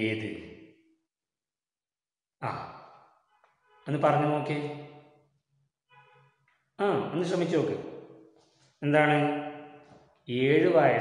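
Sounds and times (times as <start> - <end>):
man speaking: 0.0 - 0.5, 2.4 - 2.8, 3.9 - 4.8, 6.8 - 7.8, 8.8 - 9.6, 10.3 - 11.0.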